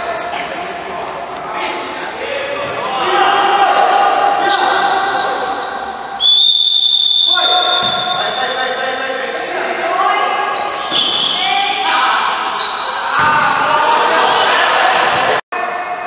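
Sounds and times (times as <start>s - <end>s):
players shouting in hall: 1.5s - 8.4s, 9.4s - 16.0s
referee's whistle blast: 4.5s - 8.4s.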